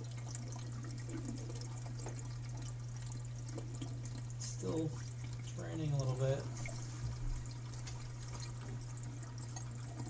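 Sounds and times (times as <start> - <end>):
steady low hum: 0.0 - 10.0
water trickling and dripping: 0.0 - 10.0.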